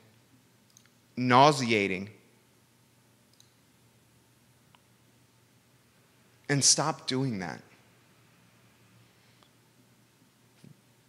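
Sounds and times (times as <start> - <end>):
man speaking: 1.2 - 2.2, 6.5 - 7.8.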